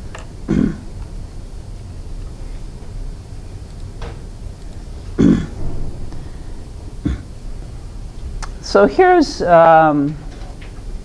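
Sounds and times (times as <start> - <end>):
low hum: 0.0 - 11.0
woman clearing throat: 0.5 - 0.9, 5.2 - 5.6, 7.0 - 7.3.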